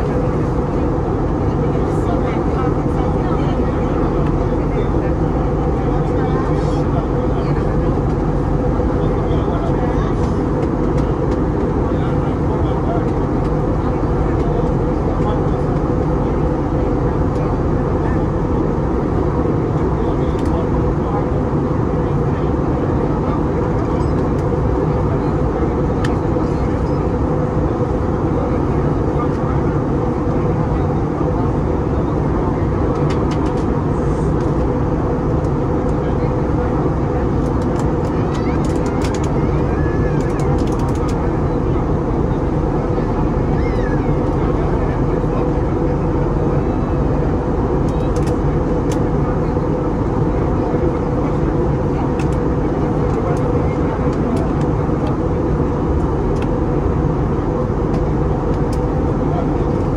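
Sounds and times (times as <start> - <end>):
airliner cabin engine drone: 0.0 - 59.9.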